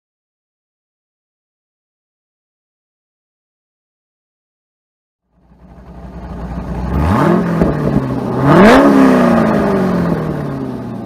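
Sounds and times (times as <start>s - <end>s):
car engine accelerating hard: 5.4s - 11.0s.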